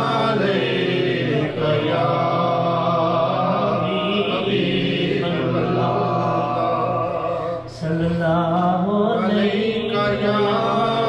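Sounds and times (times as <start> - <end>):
man singing into a microphone: 1.3 - 11.0.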